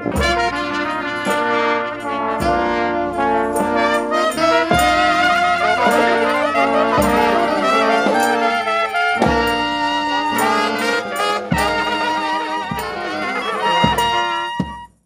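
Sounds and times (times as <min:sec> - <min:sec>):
brass band playing a dirge: 0:00.0 - 0:15.0.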